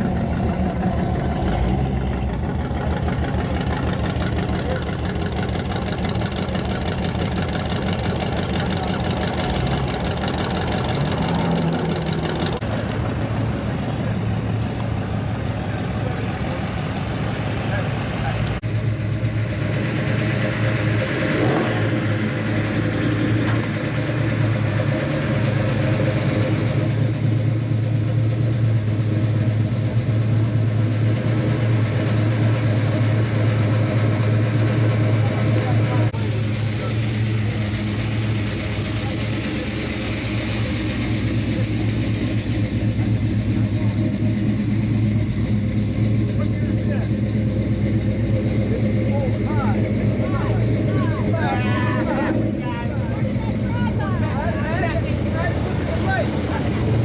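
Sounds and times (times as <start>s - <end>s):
car engines droning at low speed: 0.0s - 57.0s
engine revving: 0.0s - 57.0s.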